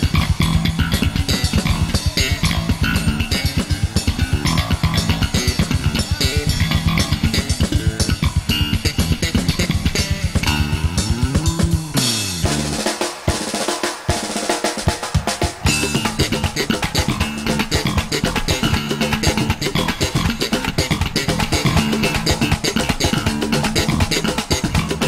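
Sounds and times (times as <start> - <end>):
electronic drum kit: 0.0 - 25.0
fast electric bass line: 0.0 - 25.0.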